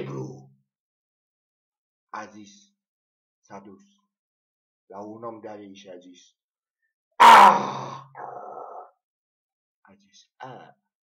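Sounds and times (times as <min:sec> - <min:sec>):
man groaning: 0:07.2 - 0:08.4
man's loud vocal outburst: 0:07.2 - 0:08.8.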